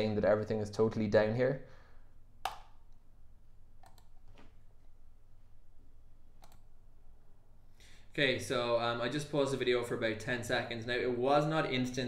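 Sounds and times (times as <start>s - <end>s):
computer clicks: 3.8s - 4.5s, 6.4s - 6.7s.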